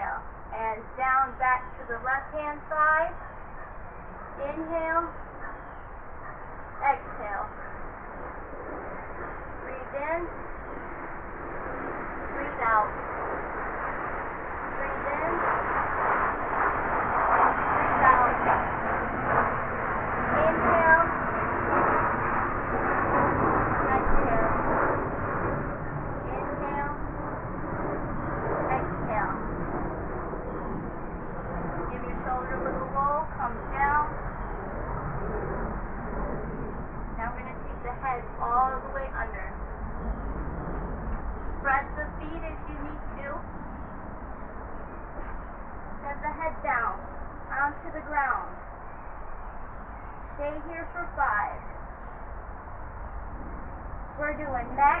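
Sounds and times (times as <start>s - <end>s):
steady background noise: 0.0s - 55.0s.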